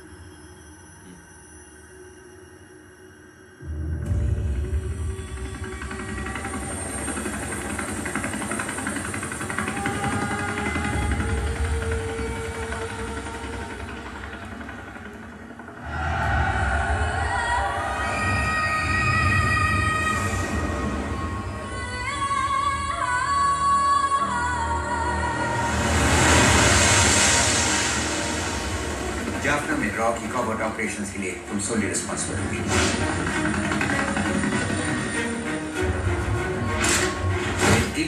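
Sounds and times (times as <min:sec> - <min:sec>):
dark trailer music: 0:00.0 - 0:38.0
deep steady rumble: 0:03.9 - 0:23.3.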